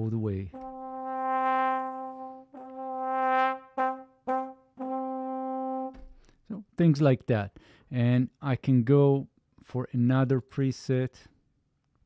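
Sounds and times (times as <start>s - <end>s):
trombone playing: 0.0s - 6.1s.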